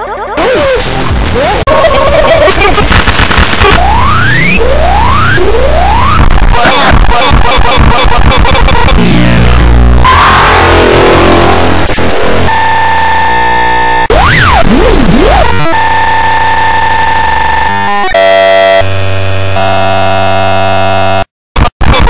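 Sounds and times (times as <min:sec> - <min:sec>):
harsh electronic noise: 0:00.4 - 0:22.0
buzzing synthesizer-like tones: 0:02.5 - 0:22.0.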